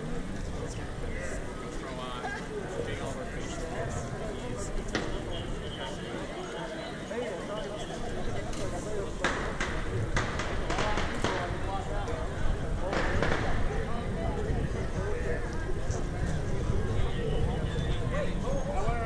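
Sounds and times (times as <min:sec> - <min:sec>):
crowd talking and calling out: 0:00.0 - 0:19.0.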